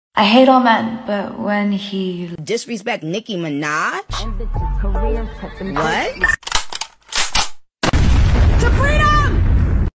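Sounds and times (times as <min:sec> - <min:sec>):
explosion blast: 0:07.8 - 0:09.9.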